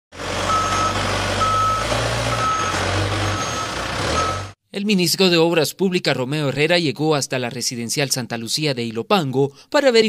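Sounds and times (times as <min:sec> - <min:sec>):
diesel engine hum: 0:00.1 - 0:04.6
reverse alarm beeps: 0:00.5 - 0:04.6.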